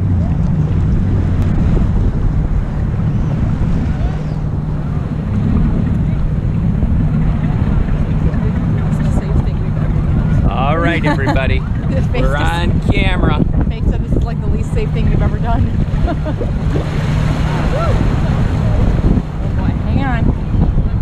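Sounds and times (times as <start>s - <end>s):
boat engine droning: 0.0s - 21.0s
wind on microphone: 0.0s - 21.0s.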